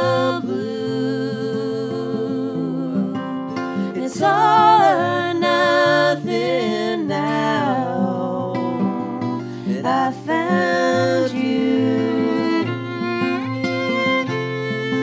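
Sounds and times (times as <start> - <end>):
acoustic guitar strumming: 0.0 - 15.0
fiddle melody: 0.0 - 15.0.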